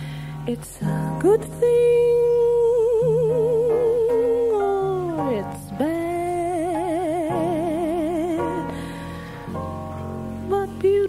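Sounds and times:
piano and bass: 0:00.0 - 0:11.0
woman singing jazz: 0:00.5 - 0:08.8, 0:10.2 - 0:11.0.

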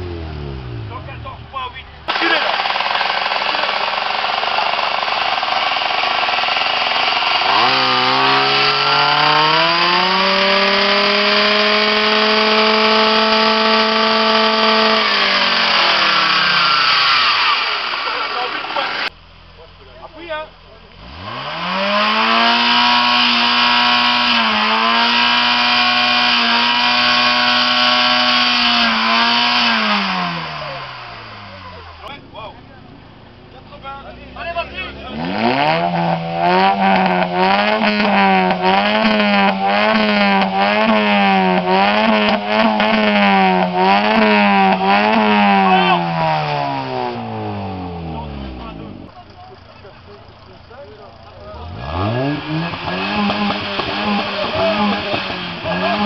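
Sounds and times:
loud engine revving: 0:00.0 - 0:19.2, 0:20.9 - 0:56.0.

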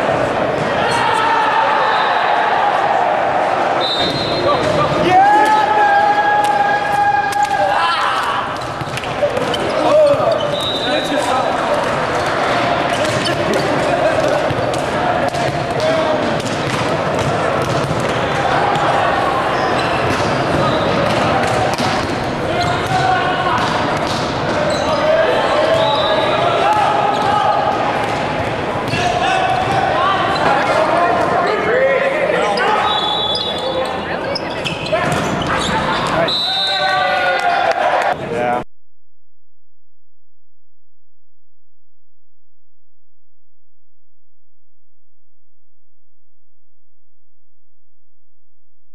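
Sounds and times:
players calling and talking: 0:00.0 - 0:38.6
volleyball smacks and bounces: 0:14.3 - 0:18.9.

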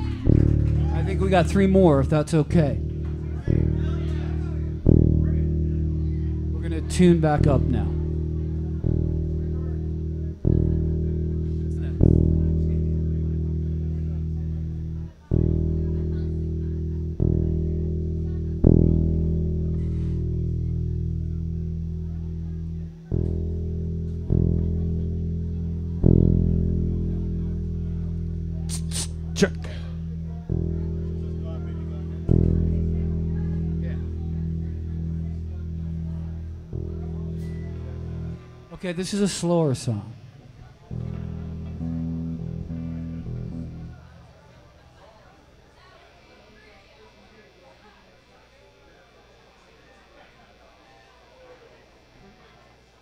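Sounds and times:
bass guitar notes plucked: 0:00.0 - 0:45.4.

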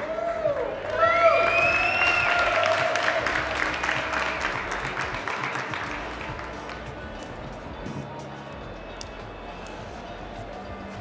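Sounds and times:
high whoops: 0:00.0 - 0:03.6
audience applauding and cheering: 0:00.0 - 0:07.1.

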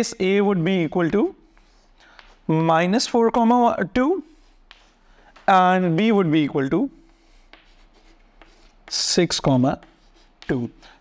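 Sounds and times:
chalk tapping: 0:00.3 - 0:11.0
chalk scratching on blackboard: 0:04.2 - 0:05.6, 0:07.0 - 0:11.0.

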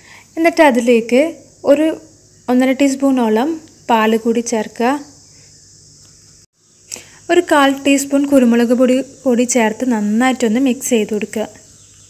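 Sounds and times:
high-pitched hiss: 0:00.0 - 0:12.0
woman speaking: 0:00.4 - 0:05.2, 0:07.3 - 0:11.6.

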